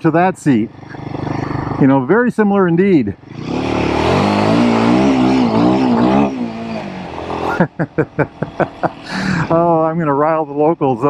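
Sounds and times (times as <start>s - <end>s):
motorcycle engine accelerating: 0.0s - 10.7s
man laughing: 7.3s - 9.8s.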